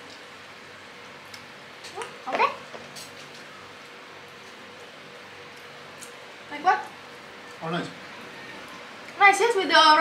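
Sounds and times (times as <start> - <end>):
skewers sizzling on a grill: 0.0 - 10.0.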